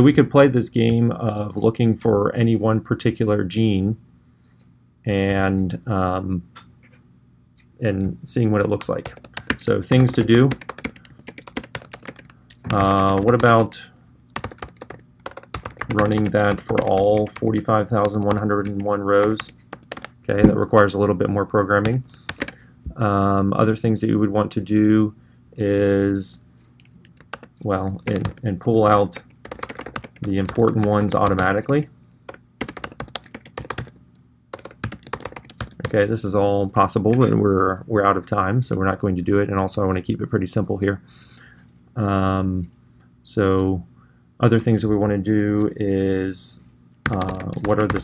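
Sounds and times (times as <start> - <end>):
keyboard typing: 8.7 - 13.7, 14.4 - 20.6, 21.8 - 22.6, 27.1 - 31.7, 32.3 - 33.9, 34.5 - 36.1, 47.0 - 48.0.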